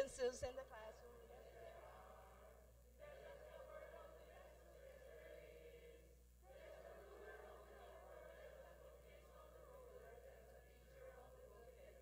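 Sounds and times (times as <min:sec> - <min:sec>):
group of adults singing: 0:00.0 - 0:12.0.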